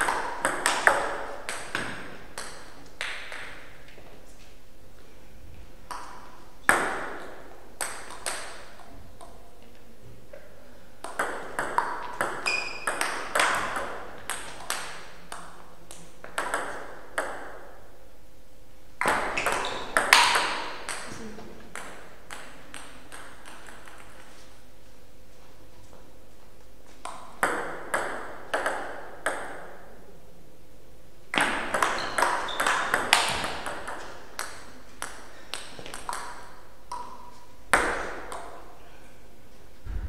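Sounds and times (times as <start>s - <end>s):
table tennis ball rallies: 11.0s - 15.5s.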